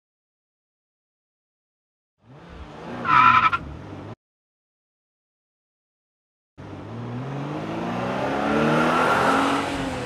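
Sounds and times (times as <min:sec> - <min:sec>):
sports car engine revving: 0:06.8 - 0:10.0.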